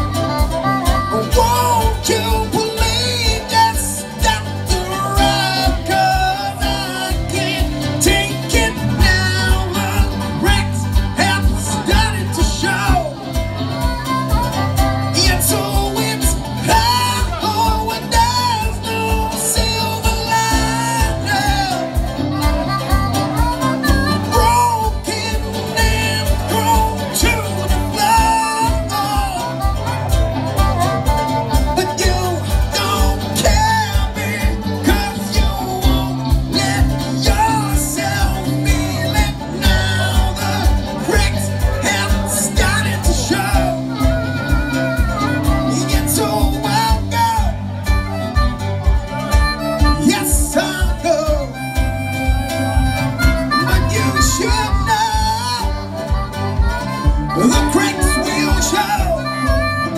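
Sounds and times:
bass guitar: 0.0 - 59.9
electric guitar: 0.0 - 59.9
harmonica wailing: 0.0 - 59.9
steady drum beat: 0.0 - 59.9.

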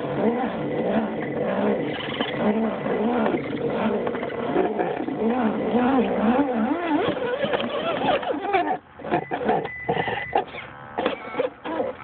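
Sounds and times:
rc truck electric motor whine: 5.2 - 12.0.

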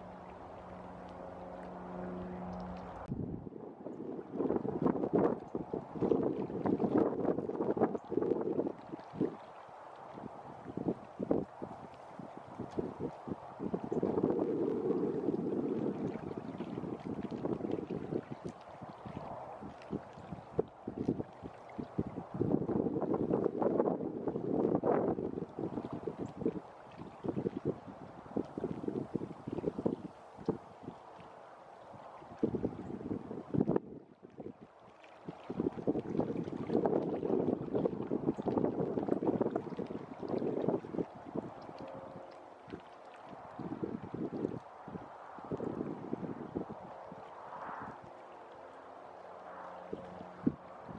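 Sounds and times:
wind buffeting microphone: 0.0 - 50.9.

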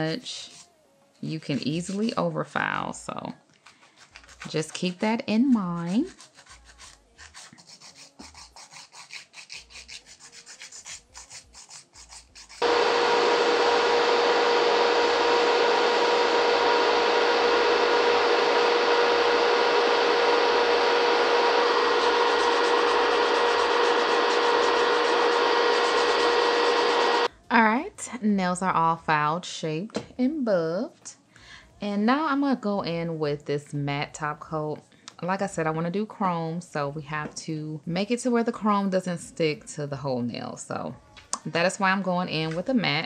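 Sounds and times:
file scratching nails: 1.4 - 2.2, 3.6 - 12.6, 22.0 - 27.2
electric nail drill humming: 12.6 - 27.3.

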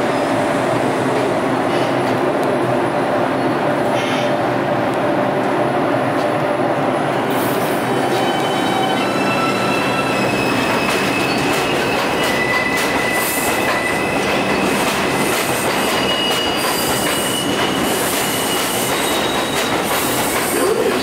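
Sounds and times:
train wheels rumbling on rail: 0.0 - 21.0
high wheel squeals: 7.9 - 19.7.

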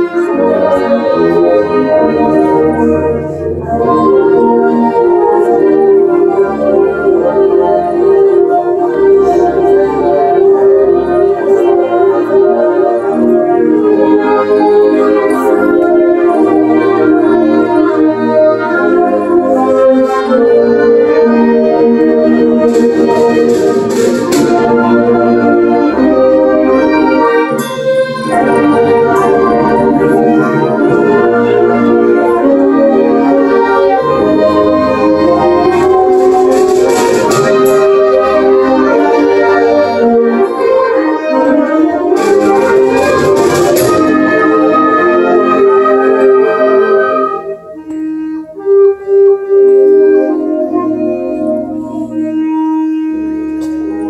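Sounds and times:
concert band playing chords: 0.0 - 54.0.

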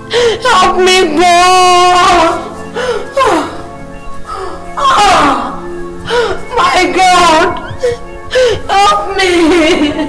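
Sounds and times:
background music with held notes: 0.0 - 10.0
woman wailing: 4.8 - 10.0.

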